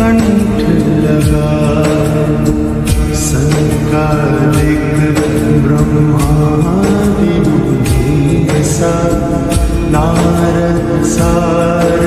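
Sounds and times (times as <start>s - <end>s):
devotional music with percussion: 0.0s - 12.0s.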